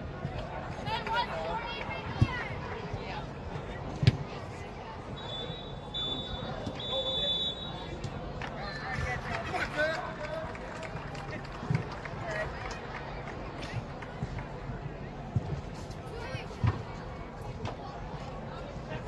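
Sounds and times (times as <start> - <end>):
players and spectators calling out: 0.3 - 10.3.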